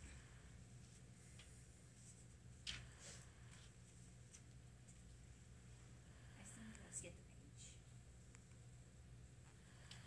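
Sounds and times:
low steady hum: 0.0 - 10.0
faint whispering voices: 6.1 - 7.9.

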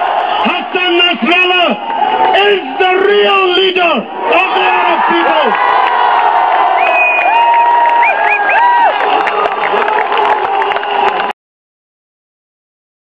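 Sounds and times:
crowd cheering and shouting: 0.0 - 11.4
whistle-like calls: 6.8 - 7.4.

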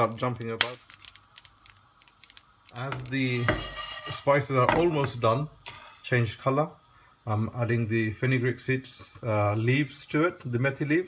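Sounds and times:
seeds popping in a frying pan: 0.0 - 6.1.

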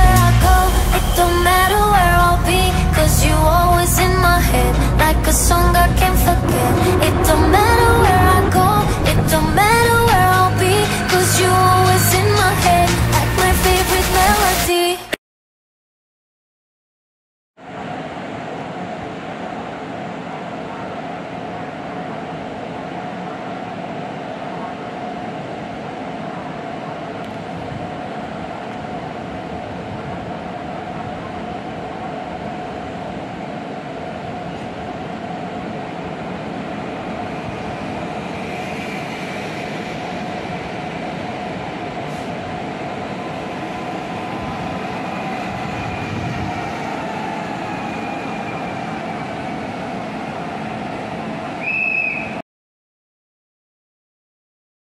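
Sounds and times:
train motor whine: 0.0 - 12.5
train rolling noise: 0.0 - 14.7, 17.7 - 52.2.

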